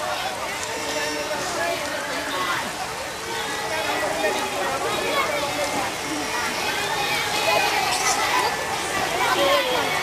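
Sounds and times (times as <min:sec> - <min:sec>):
rain hissing: 0:00.0 - 0:10.0.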